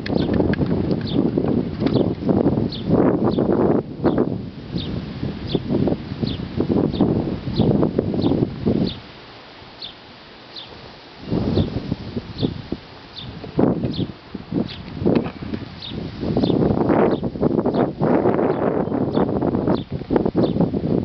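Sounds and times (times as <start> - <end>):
low rustling and rumbling: 0.0 - 9.8, 10.7 - 21.0
bird chirping: 1.0 - 1.3, 1.9 - 2.1, 2.7 - 9.0, 9.8 - 10.8, 12.4 - 14.9, 15.8 - 17.9, 18.5 - 20.6.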